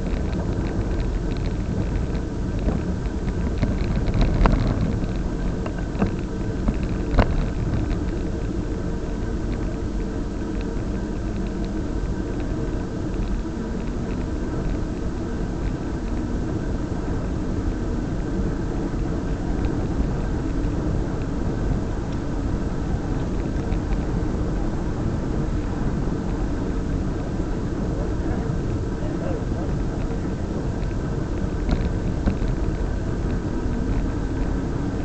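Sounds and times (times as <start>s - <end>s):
faint steady hum: 0.0s - 35.0s
tyres rolling over asphalt: 0.0s - 35.0s
wind noise: 0.0s - 35.0s.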